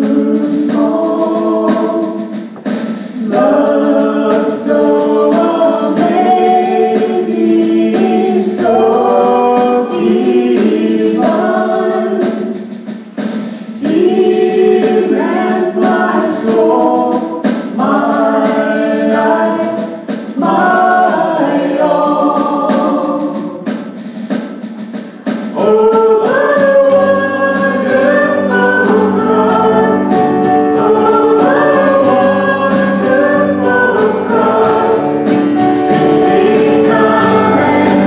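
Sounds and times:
keyboard: 0:00.0 - 0:13.0, 0:25.0 - 0:38.0
voices singing together: 0:00.0 - 0:38.0
acoustic and electric guitars: 0:26.4 - 0:38.0.

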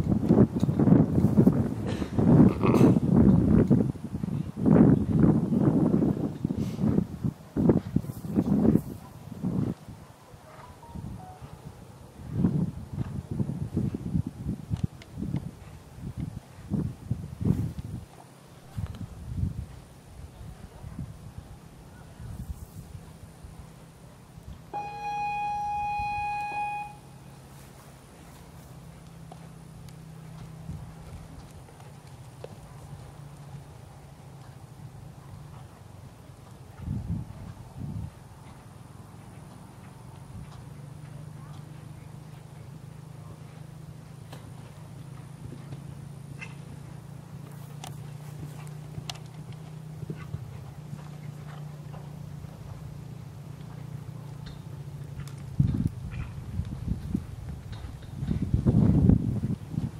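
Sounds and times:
hoofbeats on sand: 0:00.0 - 0:21.1, 0:27.4 - 0:59.9
signal buzzer tone: 0:24.8 - 0:27.1.

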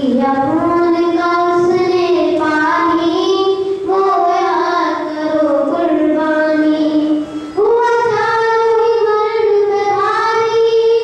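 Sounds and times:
boy singing into microphone: 0:00.0 - 0:11.0.

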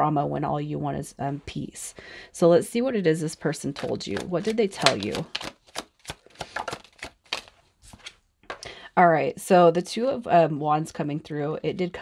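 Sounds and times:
cards shuffling clicks: 0:03.7 - 0:08.2.

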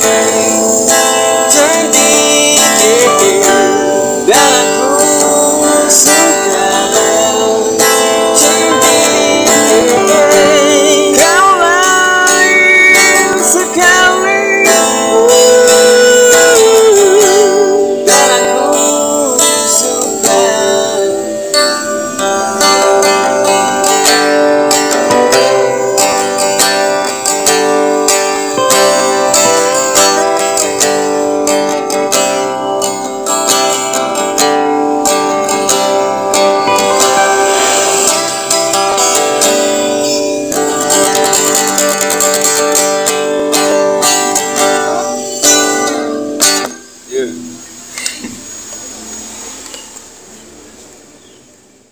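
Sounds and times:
acoustic guitar strummed and picked: 0:00.0 - 0:51.5
man singing held note: 0:01.4 - 0:21.4, 0:28.6 - 0:30.7.

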